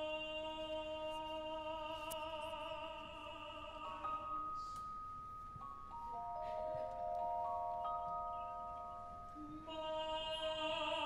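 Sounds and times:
bell-like celesta notes: 0:04.0 - 0:09.6.

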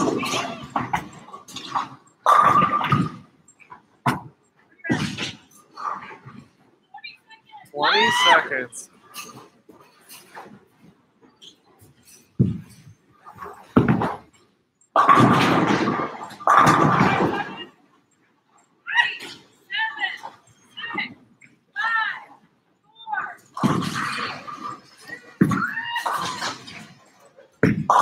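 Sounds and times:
bowling pins crashing: 0:00.0 - 0:03.3, 0:12.4 - 0:14.3, 0:15.0 - 0:17.6, 0:23.6 - 0:27.0
excited vocal yelps: 0:07.8 - 0:08.6, 0:25.5 - 0:26.6
bowling balls thudding on lane: 0:12.4 - 0:14.3, 0:15.0 - 0:17.6, 0:23.6 - 0:27.0.

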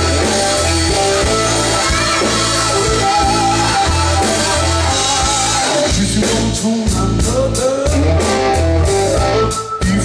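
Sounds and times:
drum kit beat: 0:00.0 - 0:10.0
electric guitar: 0:00.0 - 0:10.0.

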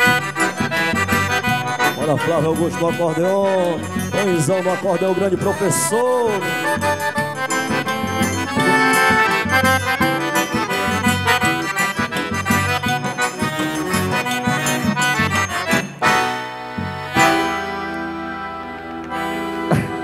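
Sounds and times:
accordion music: 0:00.0 - 0:20.0
steady bass rhythm: 0:04.0 - 0:20.0.

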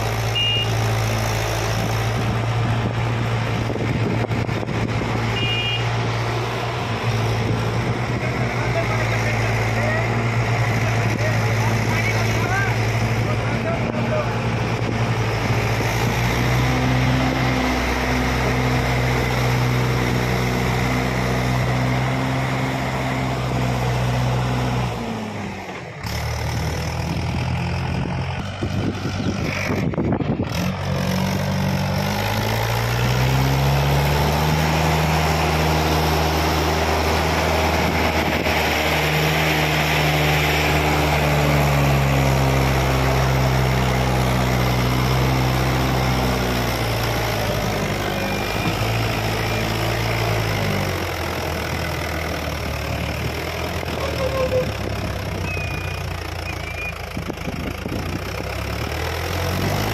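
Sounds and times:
tractor diesel engine: 0:00.0 - 0:59.9.

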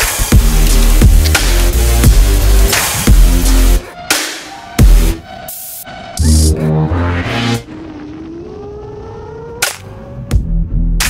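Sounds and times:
rising synth tone: 0:04.6 - 0:10.5.

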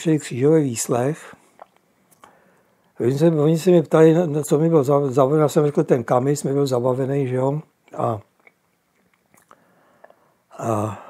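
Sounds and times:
mouth clicks and lip smacks: 0:01.4 - 0:03.0, 0:07.8 - 0:10.3.

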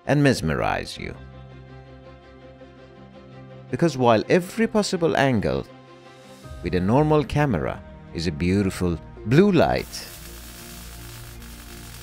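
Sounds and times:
background music: 0:00.0 - 0:12.0
welding arc crackling hiss: 0:09.7 - 0:12.0.

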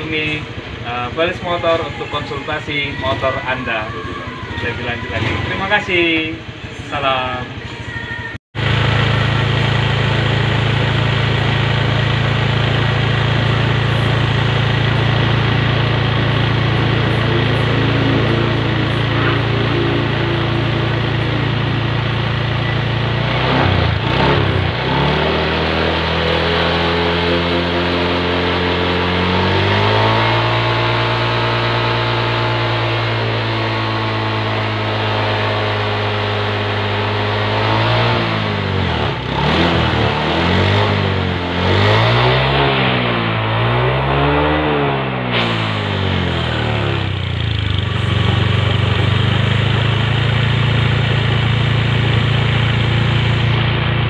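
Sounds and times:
scooter engine revving: 0:00.0 - 0:54.0.

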